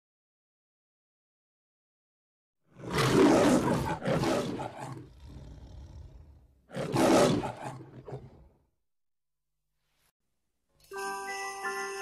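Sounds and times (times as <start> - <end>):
lion growling low: 2.7 - 8.6
lion roaring: 2.7 - 8.6.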